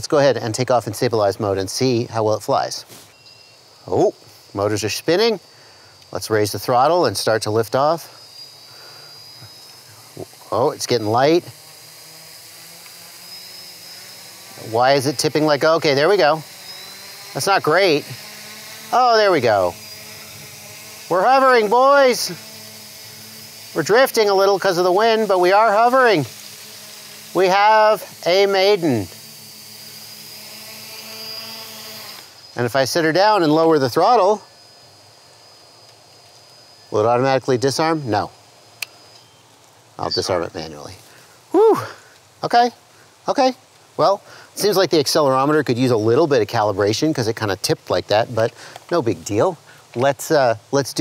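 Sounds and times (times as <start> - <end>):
drone motors whining at idle: 0.9 - 49.0.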